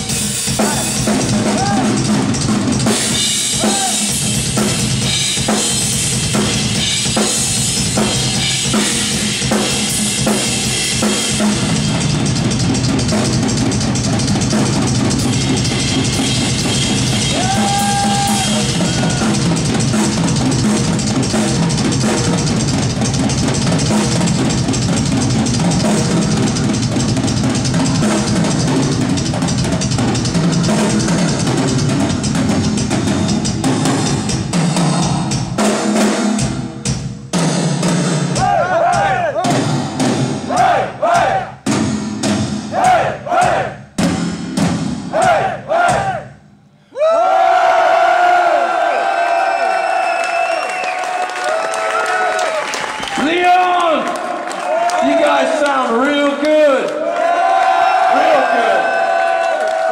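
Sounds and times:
drum kit playing: 0:00.0 - 0:46.6
crowd cheering: 0:17.2 - 0:19.6, 0:46.9 - 0:59.9
crowd shouting: 0:17.3 - 0:19.4, 0:38.4 - 0:39.6, 0:40.5 - 0:41.5, 0:42.7 - 0:43.8, 0:45.1 - 0:46.3, 0:57.0 - 0:59.9.

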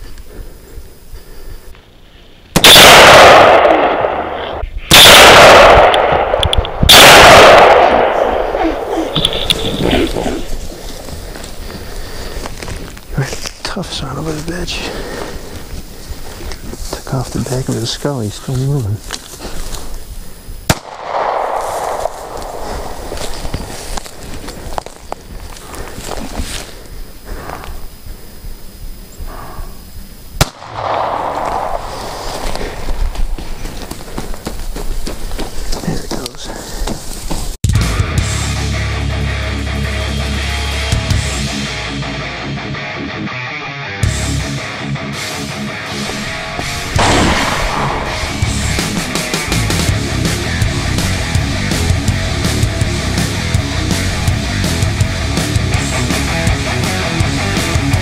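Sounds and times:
handgun shots: 0:02.6 - 0:09.6, 0:46.9 - 0:48.3
heavy rock music: 0:37.6 - 0:58.0.

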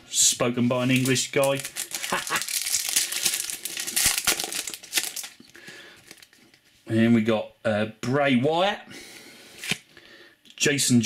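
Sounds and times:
foil wrapper crinkling: 0:00.8 - 0:06.6.

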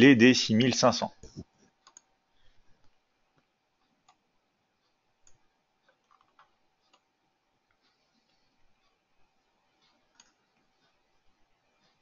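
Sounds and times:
faint steady hum: 0:00.0 - 0:12.0
computer mouse clicks: 0:01.2 - 0:02.1, 0:03.9 - 0:04.2, 0:05.2 - 0:07.1, 0:09.8 - 0:10.5.

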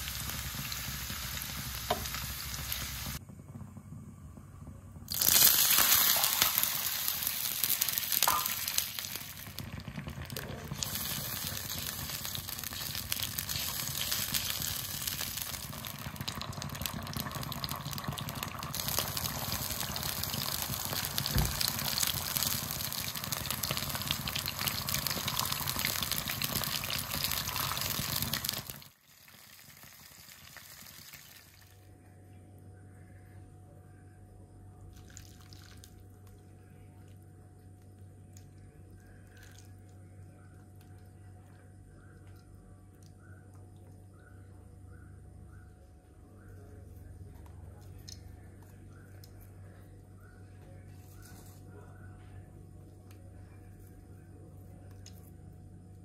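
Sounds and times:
oil and sauce sizzling in a wok: 0:00.0 - 0:03.2, 0:05.0 - 0:31.7
faint low hum: 0:30.6 - 0:56.0.

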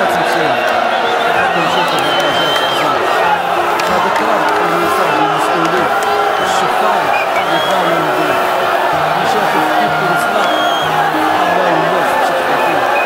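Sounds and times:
crowd chanting and singing: 0:00.0 - 0:13.0.

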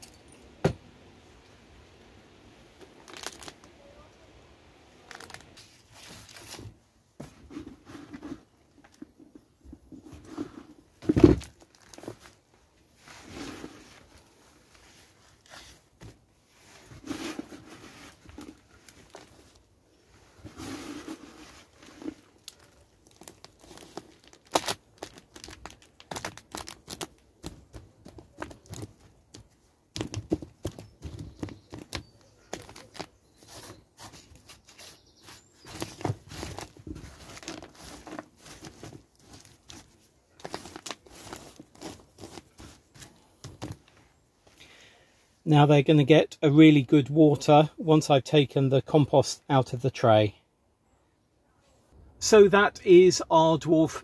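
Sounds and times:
compost rustling and scraping: 0:05.0 - 0:44.5.

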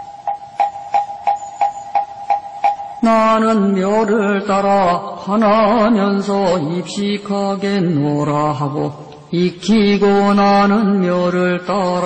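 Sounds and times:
steady held tone: 0:00.0 - 0:05.9.

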